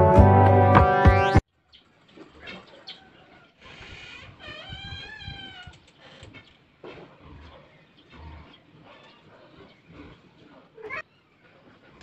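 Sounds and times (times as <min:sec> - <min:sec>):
drawn-out animal call: 0:03.0 - 0:06.6, 0:07.4 - 0:12.0.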